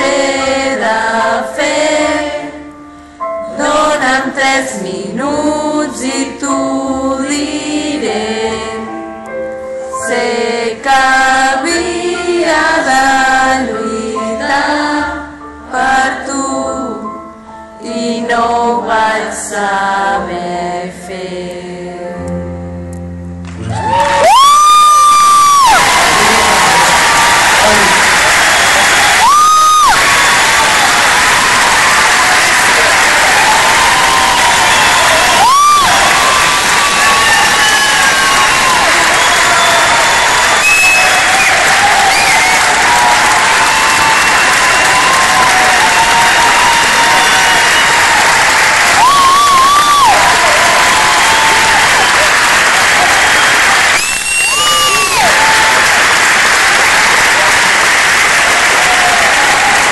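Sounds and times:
audience applauding: 23.5 - 59.9
cheering voices: 23.6 - 59.9.

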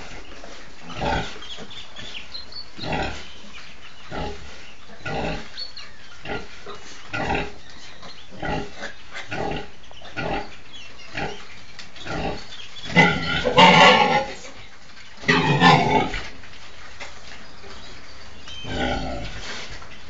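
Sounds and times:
pig squealing: 12.1 - 14.5, 15.2 - 16.2
sow grunting: 12.1 - 14.6.

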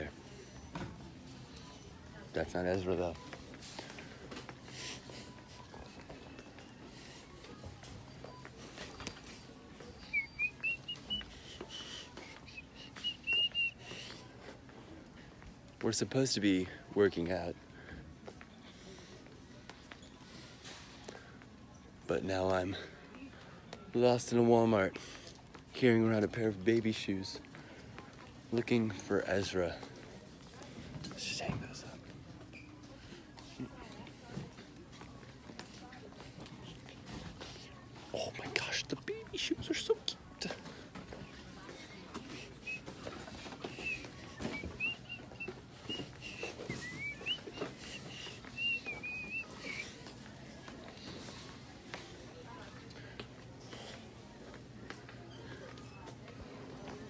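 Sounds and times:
person whistling a tune: 12.4 - 13.8
man whispering syllables: 38.1 - 40.6.

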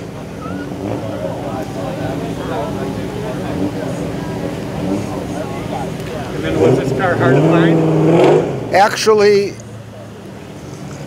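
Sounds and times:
distant voices: 0.0 - 11.0.

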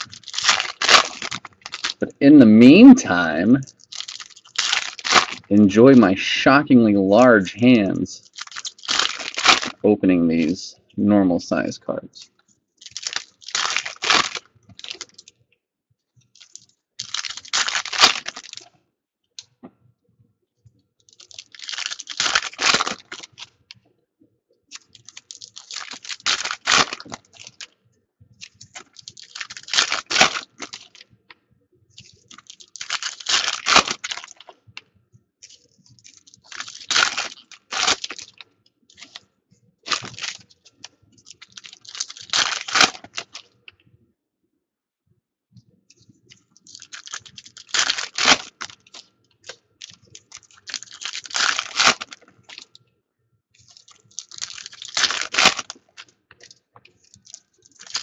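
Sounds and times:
foil wrappers tearing and crinkling: 0.0 - 2.1, 3.1 - 5.5, 8.2 - 9.8, 12.8 - 15.3, 16.4 - 18.7, 21.1 - 23.5, 24.7 - 27.7, 28.4 - 31.0, 32.0 - 34.6, 35.4 - 39.2, 39.9 - 43.5, 46.7 - 52.7, 53.6 - 58.0.

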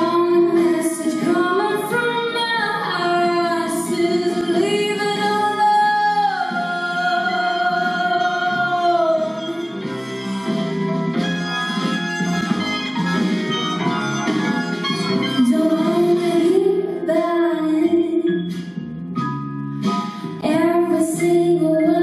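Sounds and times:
woman singing into microphone: 0.0 - 9.8, 15.4 - 18.4, 20.4 - 22.0.

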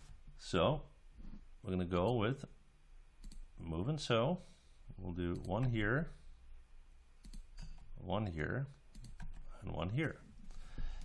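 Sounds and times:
faint room hum: 0.0 - 11.0
computer mouse clicks: 3.2 - 3.5, 7.2 - 7.9, 8.9 - 9.5.

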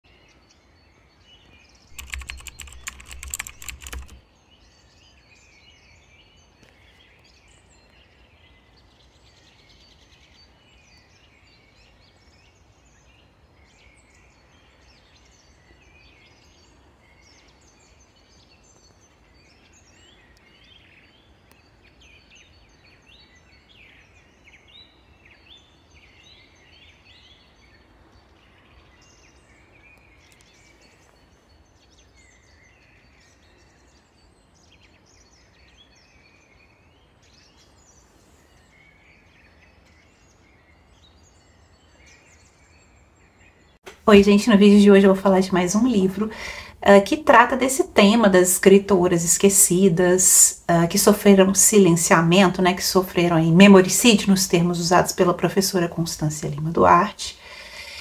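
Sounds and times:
birds chirping: 0.4 - 4.2, 13.7 - 58.0.

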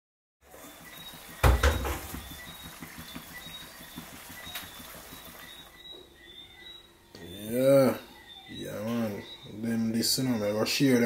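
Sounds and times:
pot simmering crackle: 0.4 - 5.9.

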